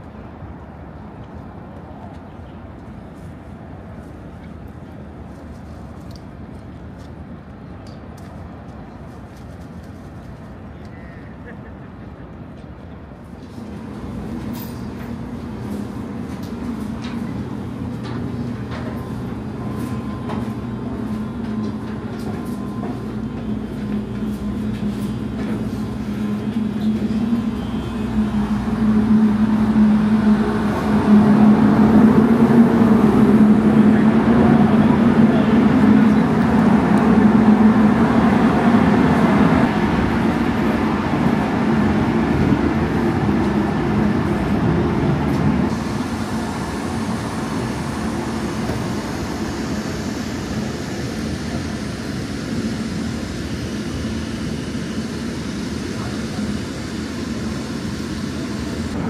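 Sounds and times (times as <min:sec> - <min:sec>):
machinery and ventilation hum: 0:00.0 - 0:59.0.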